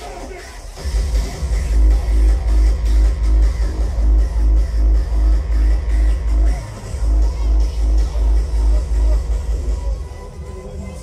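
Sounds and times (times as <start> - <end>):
hardstyle dance music: 0.0 - 11.0
pounding kick drum: 0.7 - 10.1.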